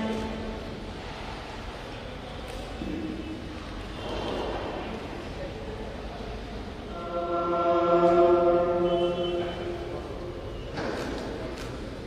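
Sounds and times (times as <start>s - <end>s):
person chanting a long sung note: 6.9s - 10.4s.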